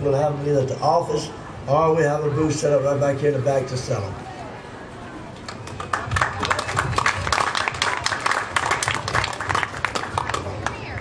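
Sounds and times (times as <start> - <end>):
audience applause: 5.5 - 11.0.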